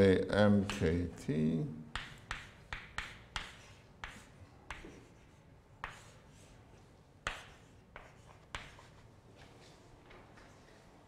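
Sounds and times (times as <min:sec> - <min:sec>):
chalk tapping on blackboard: 0:00.6 - 0:01.0, 0:01.9 - 0:06.5, 0:07.2 - 0:09.0
chalk scratching on blackboard: 0:02.0 - 0:09.0.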